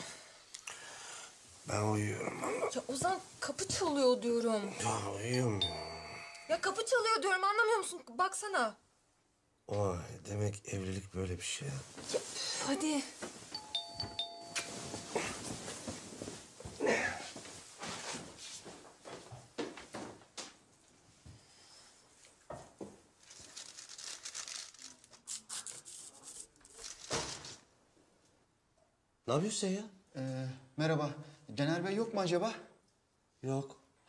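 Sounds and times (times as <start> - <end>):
rustling: 11.8 - 19.3, 23.1 - 27.7
footsteps: 13.0 - 20.6
doorbell ding-dong: 13.6 - 15.2.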